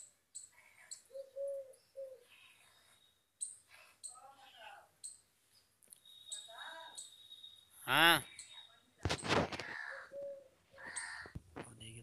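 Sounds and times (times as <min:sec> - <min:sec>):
high bird chirp: 0:00.0 - 0:08.9
bird cooing call: 0:00.9 - 0:02.4, 0:09.6 - 0:11.3.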